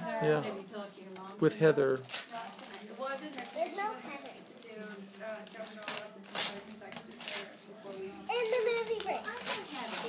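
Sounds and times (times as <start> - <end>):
girl's high-pitched voice: 8.0 - 10.0.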